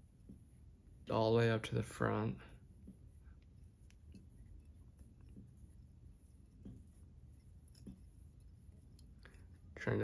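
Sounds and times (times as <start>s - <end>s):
fingers handling thread: 2.4s - 10.0s.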